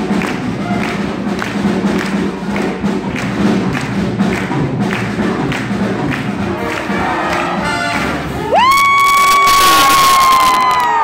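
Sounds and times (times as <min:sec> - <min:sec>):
swing jazz band playing: 0:00.0 - 0:08.7.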